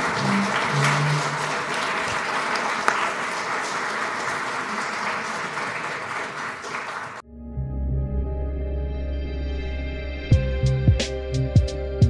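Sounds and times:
audience applauding: 0.0 - 7.2
sharp loud clap: 0.0 - 7.2.

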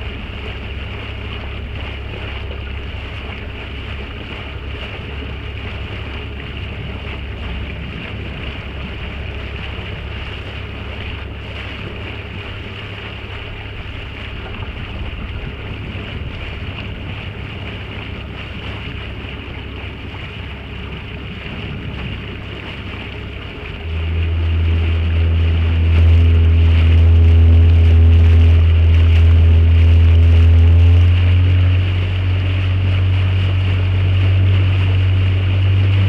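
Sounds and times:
loud low hum: 0.0 - 36.0
low engine drone: 0.0 - 36.0
water rushing past hull: 0.0 - 36.0
wind on microphone: 0.0 - 36.0.

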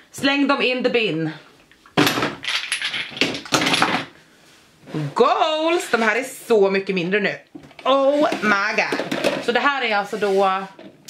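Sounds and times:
bottles clattering into a bin: 2.0 - 4.1, 8.4 - 9.6.

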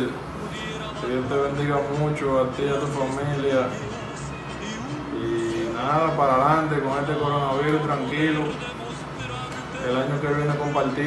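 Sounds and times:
man speaking: 4.8 - 8.6, 9.8 - 11.0.

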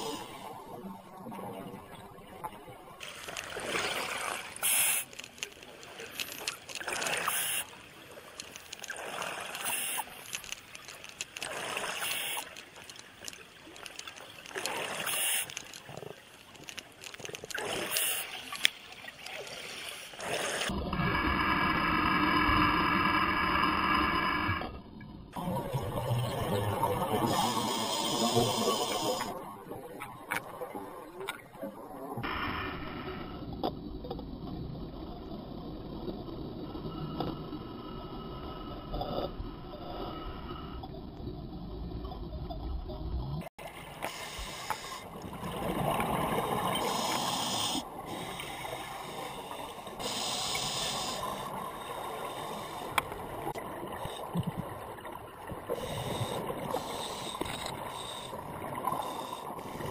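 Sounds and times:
underwater exhaled bubbles: 25.3 - 59.9.

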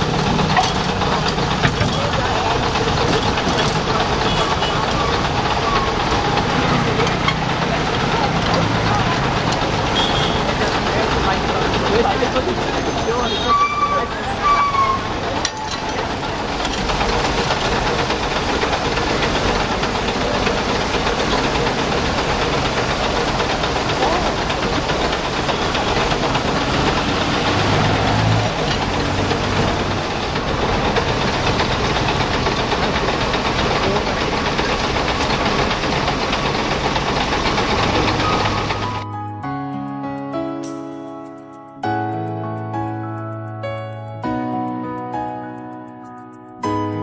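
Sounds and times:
voices: 0.0 - 39.0
engine running nearby: 0.0 - 39.1
music: 37.8 - 47.0.

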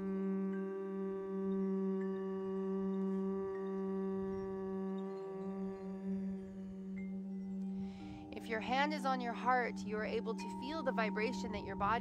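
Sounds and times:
crystal singing bowls ringing: 0.0 - 12.0
humming voices: 0.0 - 12.0.

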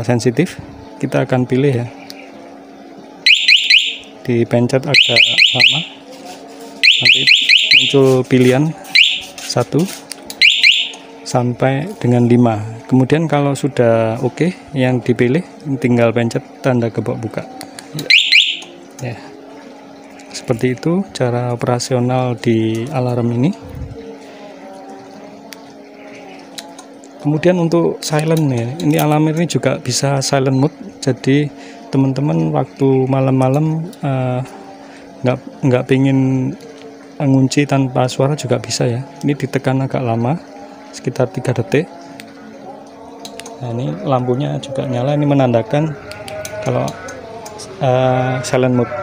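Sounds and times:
low mechanical hum: 0.0 - 49.0
motorcycle alarm rising chirps: 3.2 - 4.2, 4.9 - 6.0, 6.8 - 8.1, 8.9 - 9.3, 10.4 - 11.2, 18.0 - 18.8.

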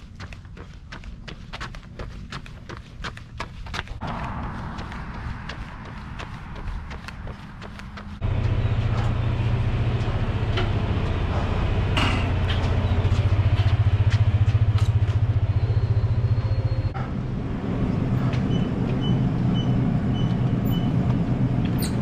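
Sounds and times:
low mechanical hum: 7.6 - 22.0.

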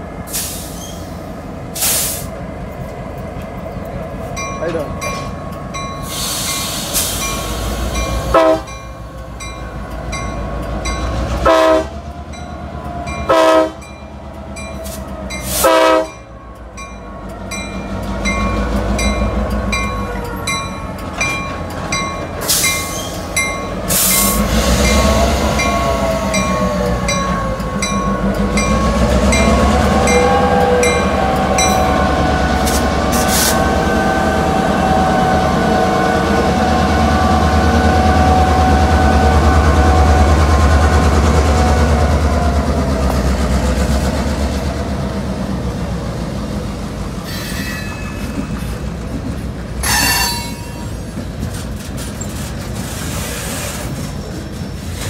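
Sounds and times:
diesel locomotive engine throttling: 0.0 - 55.0
locomotive horn blasts: 8.3 - 8.8, 11.4 - 12.0, 13.3 - 13.9, 15.5 - 16.2
bell ringing: 49.8 - 51.0.

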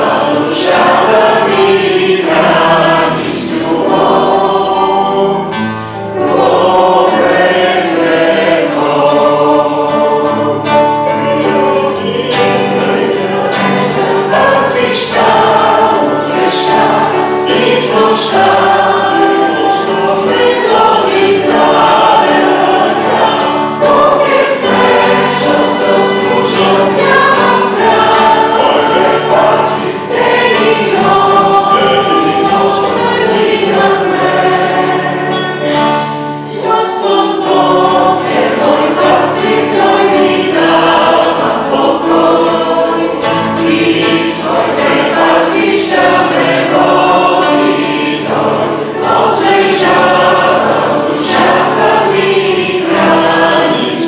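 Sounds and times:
choir singing a hymn: 0.0 - 54.0
keyboard: 0.0 - 54.0
strummed acoustic guitar: 0.0 - 54.0.

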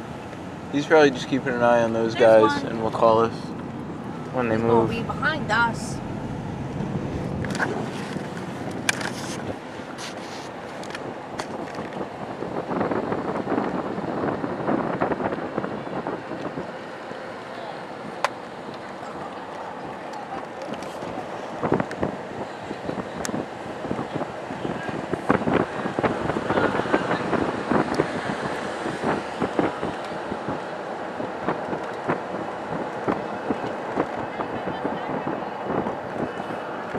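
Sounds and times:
road and engine noise inside car: 0.0 - 36.9.

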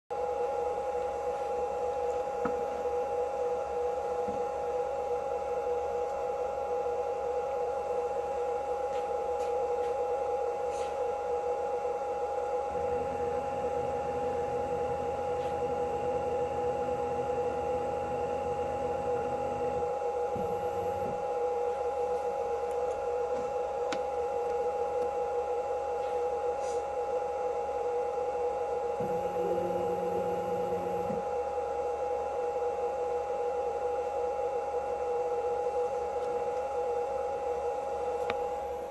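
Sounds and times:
machine high whine: 0.1 - 38.9
stepper motor hum: 7.7 - 26.5, 27.8 - 31.6.

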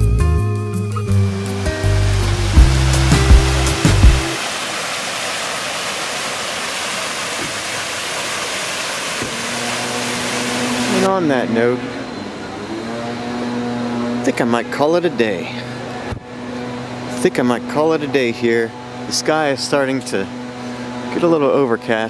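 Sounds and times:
background music: 0.0 - 4.4
swooping pitch sound: 0.8 - 4.4
fountain water splashing: 1.1 - 11.1.

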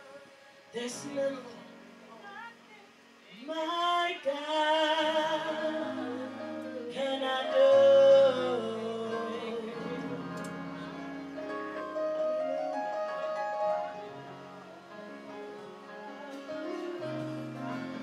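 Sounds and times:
woman singing long notes: 0.0 - 11.3.

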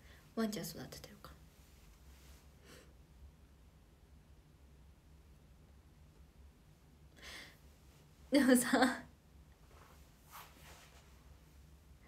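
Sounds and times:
faint room hum: 0.0 - 12.0
woman speaking: 0.4 - 1.4, 8.3 - 9.1.

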